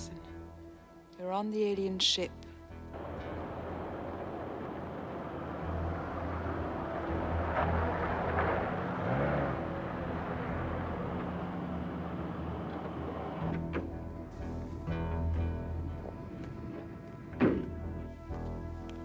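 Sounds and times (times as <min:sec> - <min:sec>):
background music with low notes: 0:00.0 - 0:19.0
car engine and tyres: 0:02.8 - 0:19.0.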